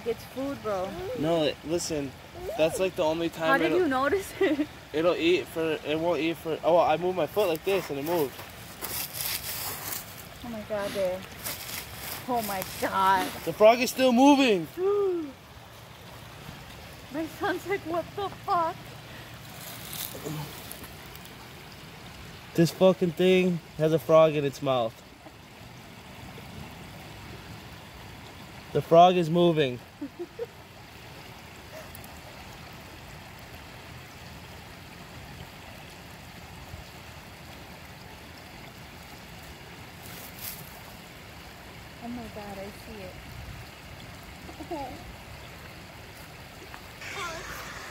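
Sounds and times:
faint outdoor background noise: 0.0s - 47.9s
water rushing: 0.0s - 47.9s
person's voice: 2.4s - 4.5s.

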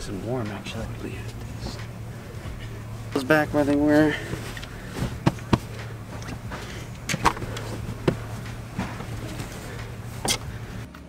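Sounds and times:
steady low hum: 0.0s - 11.0s
hands tapping and knocking: 5.0s - 9.2s.

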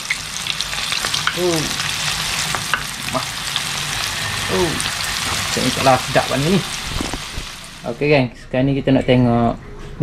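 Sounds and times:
fish frying in oil: 0.0s - 7.9s.

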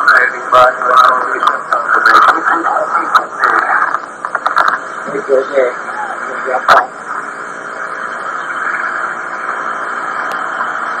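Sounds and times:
steady hiss-like noise: 0.0s - 11.0s.

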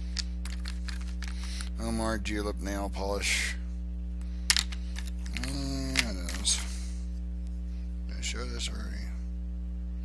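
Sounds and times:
steady electrical hum: 0.0s - 10.0s
small glass bottles clicking: 0.2s - 1.8s, 4.5s - 6.6s
person speaking: 5.2s - 6.9s.

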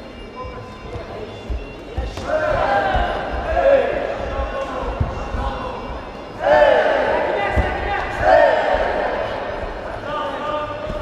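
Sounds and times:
loud shouting: 6.4s - 9.6s
dull thumps of fighters' blows: 7.5s - 9.0s.

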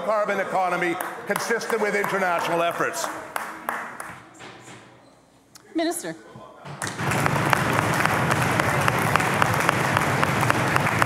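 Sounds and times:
scattered applause: 0.0s - 4.3s, 6.8s - 11.0s
sharp claps: 1.0s - 4.2s, 6.7s - 11.0s.

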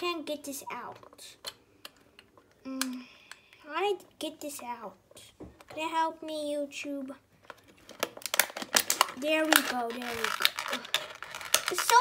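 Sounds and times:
plastic packaging crackling: 7.4s - 12.0s.

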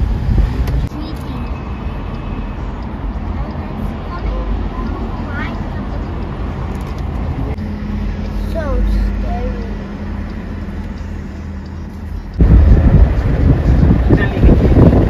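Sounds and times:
loud rough rumble: 0.0s - 1.5s, 3.9s - 15.0s
car engine and tyre rumble: 0.0s - 15.0s.

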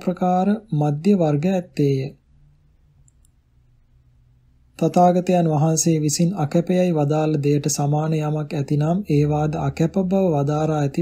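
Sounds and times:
person reading aloud: 0.0s - 2.2s, 4.7s - 11.0s
faint low room hum: 0.0s - 11.0s
faint click: 3.0s - 3.4s.

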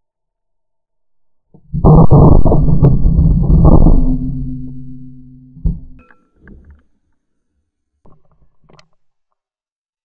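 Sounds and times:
low rumble: 1.6s - 6.0s.

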